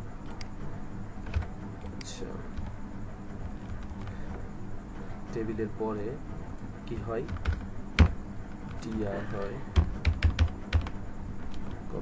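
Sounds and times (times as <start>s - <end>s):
computer keyboard typing: 1.2s - 1.5s, 3.4s - 4.2s, 7.2s - 11.6s.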